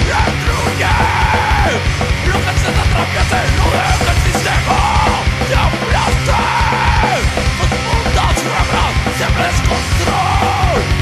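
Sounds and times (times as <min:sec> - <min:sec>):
hardcore punk music: 0:00.0 - 0:11.0
person yelling vocals: 0:00.0 - 0:11.0.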